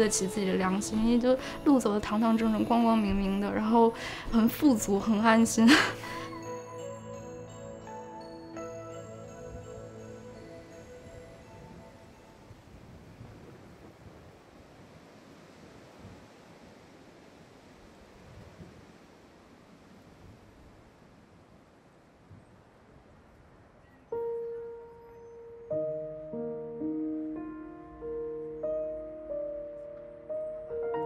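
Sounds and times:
soft background music: 0.0s - 13.6s, 24.0s - 31.0s.

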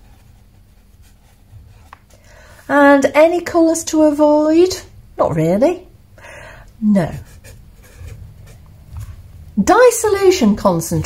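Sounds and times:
pen scratching on paper: 7.0s - 8.7s.

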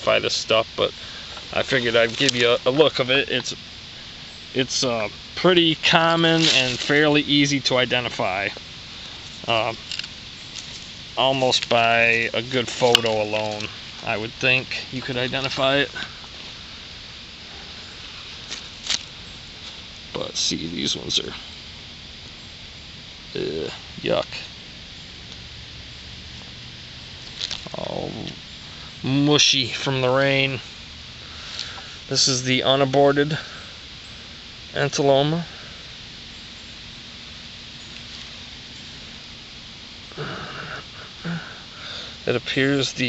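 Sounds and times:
background hiss: 0.0s - 43.0s
short rustles: 6.2s - 7.0s
breath close to microphone: 31.2s - 32.1s, 40.2s - 42.2s.

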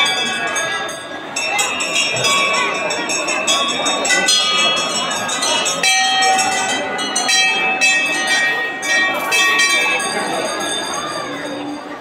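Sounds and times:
brass bell ringing: 0.0s - 11.9s.

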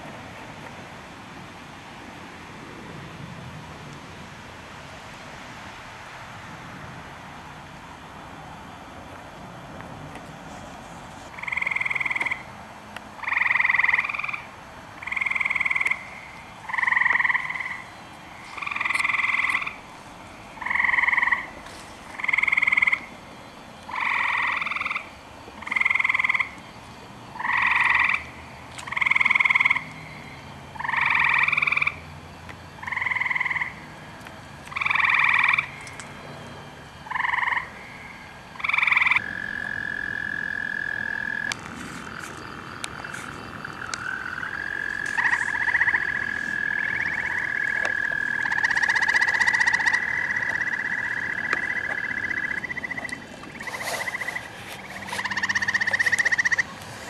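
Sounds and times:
treefrog trilling: 11.3s - 12.5s, 13.2s - 19.9s, 20.5s - 23.2s, 23.9s - 34.0s, 34.7s - 36.2s, 36.9s - 57.0s.

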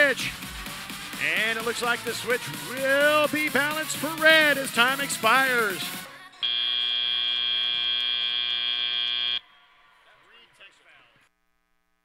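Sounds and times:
loud steady buzzer: 6.4s - 9.4s.

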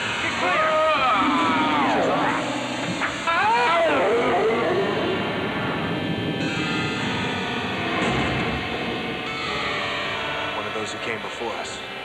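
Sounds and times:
sustained orchestral chords: 0.0s - 12.0s.

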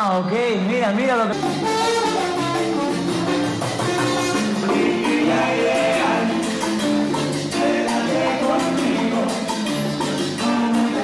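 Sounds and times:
salsa rhythm section: 0.0s - 11.0s
trombones playing held notes: 1.3s - 6.4s
person singing: 4.4s - 11.0s.

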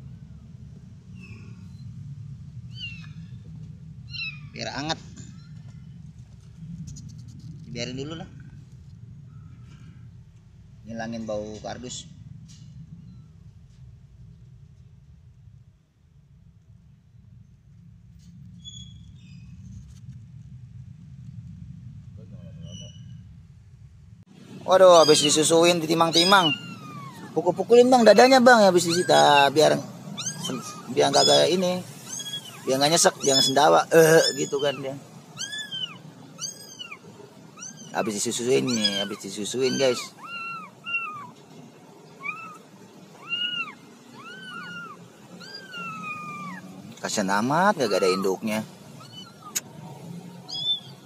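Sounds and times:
low steady rumble: 0.0s - 51.0s
kittens squeaking: 2.7s - 3.3s, 4.0s - 5.7s, 22.3s - 23.2s, 24.8s - 41.4s, 42.0s - 49.7s, 50.4s - 51.0s.

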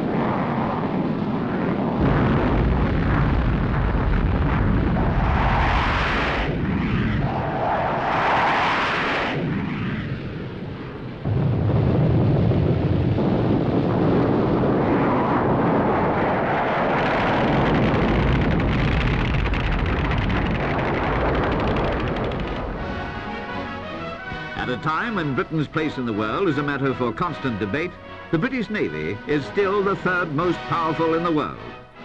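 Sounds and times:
military jet aircraft noise: 0.0s - 32.0s.

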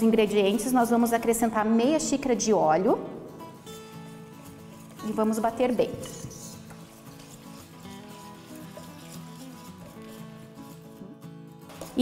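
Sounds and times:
soft background music: 0.0s - 12.0s
whisking batter in a steel bowl: 4.8s - 10.6s.

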